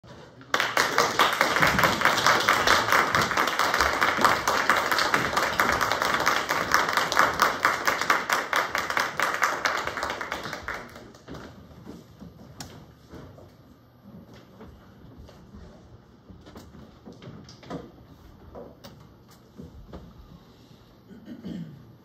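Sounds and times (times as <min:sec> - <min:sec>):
audience applauding: 0:00.4 - 0:11.3.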